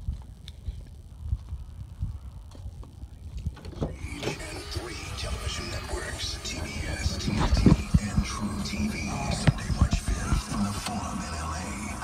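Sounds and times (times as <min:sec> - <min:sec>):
low rumble: 0:00.0 - 0:12.0
radio music: 0:00.0 - 0:12.0
radio announcer talking: 0:03.9 - 0:12.0.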